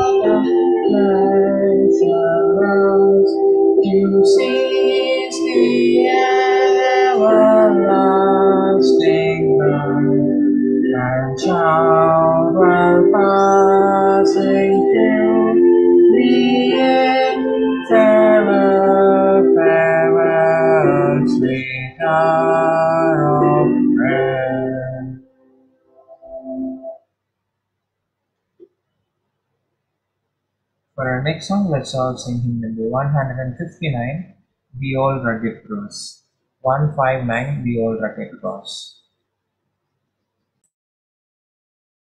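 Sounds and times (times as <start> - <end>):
woman singing a hymn: 0.0 - 10.2, 11.4 - 21.4
instrumental accompaniment: 0.0 - 27.0.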